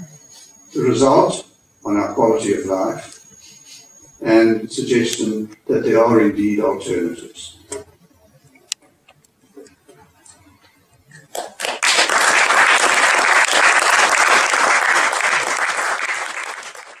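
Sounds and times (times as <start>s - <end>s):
audience applauding: 11.2s - 17.0s.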